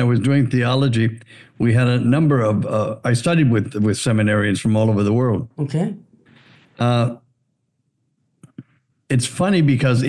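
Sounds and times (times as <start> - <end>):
man saying uh: 0.0 - 5.4, 6.8 - 7.2, 9.1 - 10.0.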